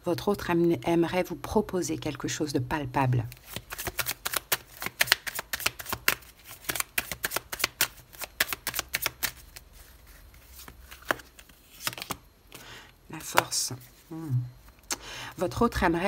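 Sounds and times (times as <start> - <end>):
cards being shuffled: 3.3 - 12.3.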